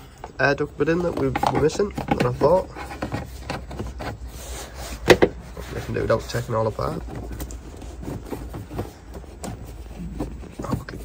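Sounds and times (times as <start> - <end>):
plastic duct scraping: 0.4 - 11.0.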